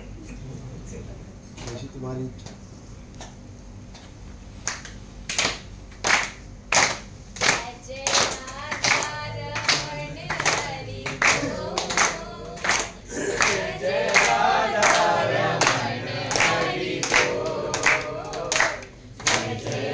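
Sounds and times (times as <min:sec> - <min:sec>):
hands clapping in a steady beat: 0:03.2 - 0:19.9.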